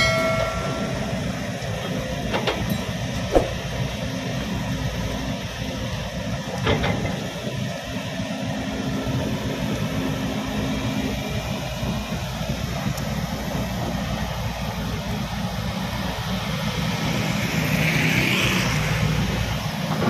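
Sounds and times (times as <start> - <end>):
excavator diesel engine running: 0.0 - 17.8, 18.6 - 20.0.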